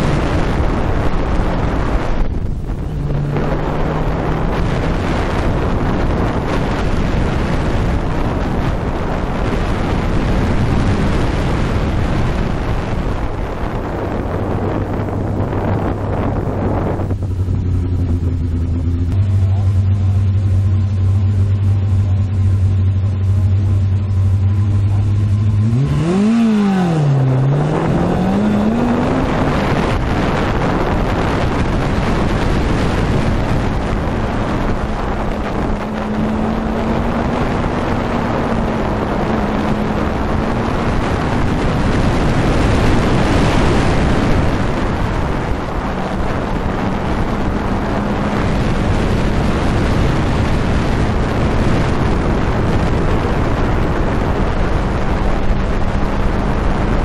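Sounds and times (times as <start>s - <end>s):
car engine running at speed: 0.0s - 57.0s
wind rushing past: 0.0s - 57.0s.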